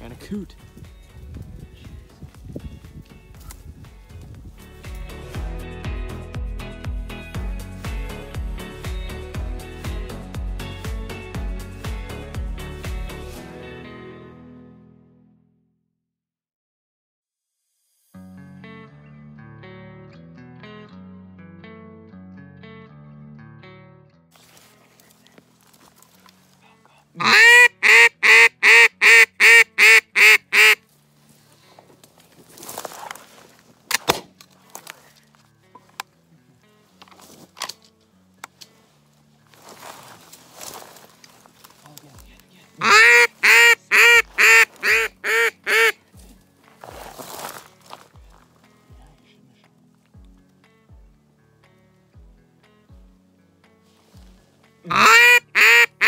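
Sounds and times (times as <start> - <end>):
background music: 0.0 - 15.6, 18.0 - 56.0
duck call quacks: 27.2 - 30.8, 42.8 - 46.0, 54.9 - 56.0.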